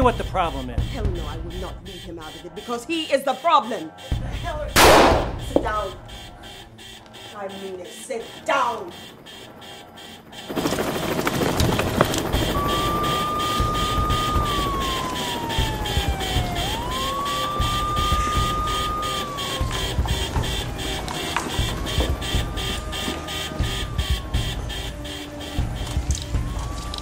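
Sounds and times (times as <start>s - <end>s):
emergency siren wailing: 0.0s - 27.0s
dense low rumble: 15.6s - 27.0s.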